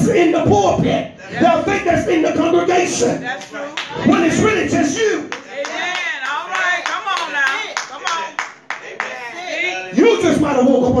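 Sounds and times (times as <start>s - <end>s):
hand clapping: 5.3s - 9.1s.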